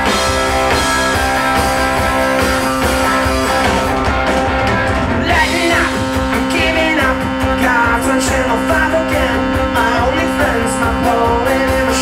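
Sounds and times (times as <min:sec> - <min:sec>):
lead guitar bending notes: 0:00.0 - 0:12.0
live rock band playing: 0:00.0 - 0:12.0.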